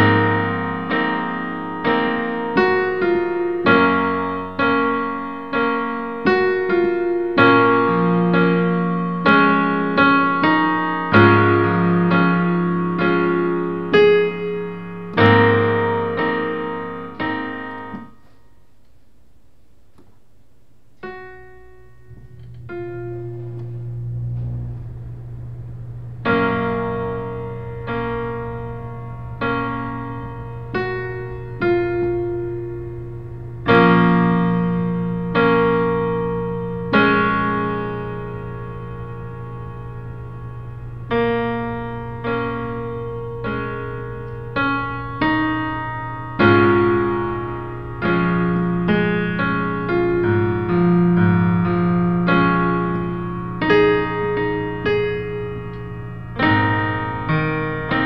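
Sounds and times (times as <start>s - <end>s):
digital piano chords: 0.0s - 58.0s
long low note: 21.4s - 45.2s.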